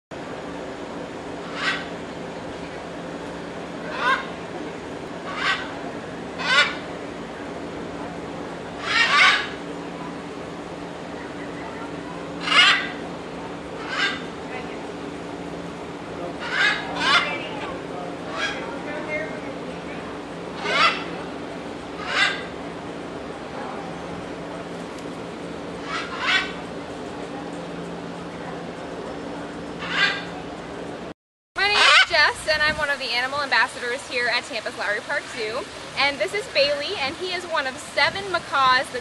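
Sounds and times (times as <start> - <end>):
steady low hum: 0.1 - 39.0
macaw squawking: 1.4 - 2.0, 3.9 - 4.4, 5.2 - 5.8, 6.4 - 6.9, 8.8 - 9.6, 12.4 - 13.0, 13.8 - 14.3, 16.4 - 17.7, 18.3 - 18.8, 20.6 - 21.2, 22.0 - 22.6, 25.8 - 26.6, 29.8 - 30.4, 31.6 - 32.3
woman speaking: 31.6 - 39.0.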